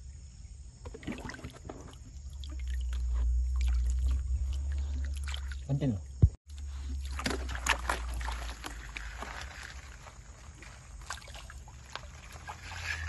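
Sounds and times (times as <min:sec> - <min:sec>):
water sloshing in a pan: 0:06.8 - 0:13.0.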